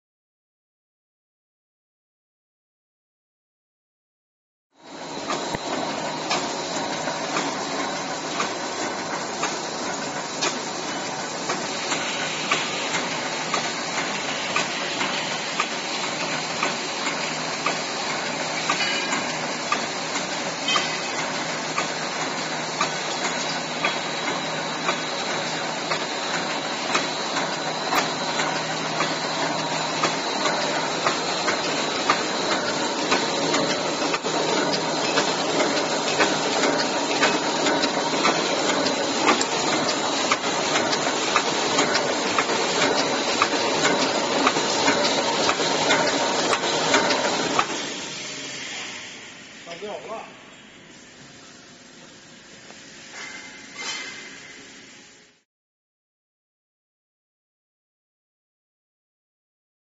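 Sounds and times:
machine clattering with knocks: 0:05.2 - 0:48.0.

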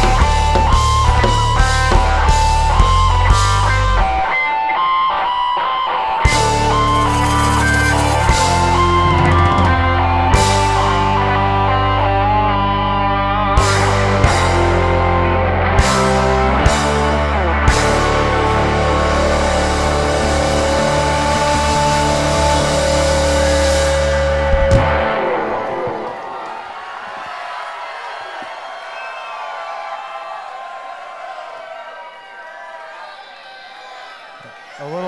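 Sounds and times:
live rock band chord: 0:00.0 - 0:26.3
audience cheering and whooping: 0:00.0 - 0:35.0.

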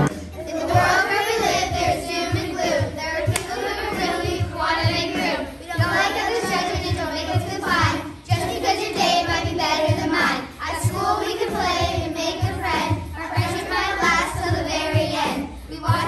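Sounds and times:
backing beat: 0:00.0 - 0:16.0
children rapping in unison: 0:00.0 - 0:16.0.

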